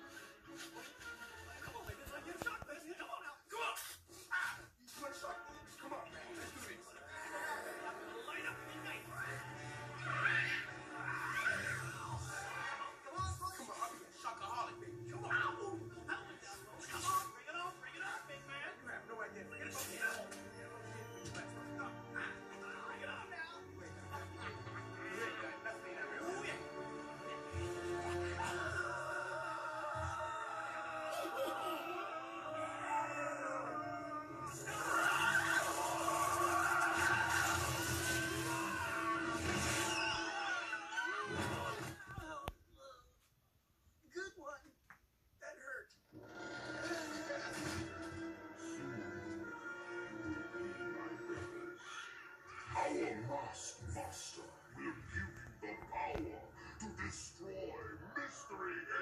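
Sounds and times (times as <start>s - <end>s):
film soundtrack music: 0.0s - 42.0s, 46.1s - 59.0s.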